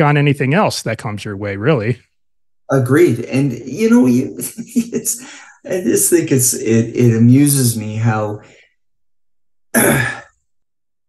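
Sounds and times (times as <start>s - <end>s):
man sighing: 9.7s - 10.4s.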